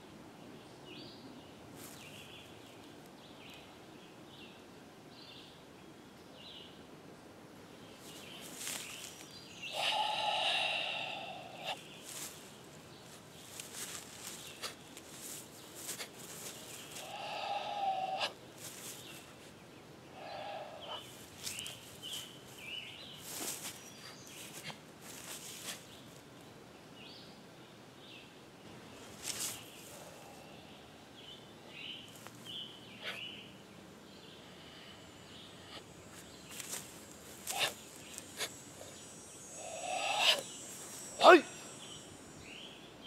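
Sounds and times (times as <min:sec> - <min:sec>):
long animal calls: 0:09.7 - 0:11.8, 0:16.9 - 0:18.4, 0:20.1 - 0:21.2, 0:37.4 - 0:41.8
man exhaling forcefully: 0:09.8 - 0:11.8, 0:17.0 - 0:18.4.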